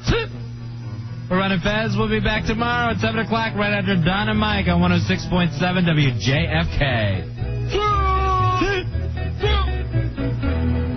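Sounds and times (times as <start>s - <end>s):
steady bass: 0.0s - 10.9s.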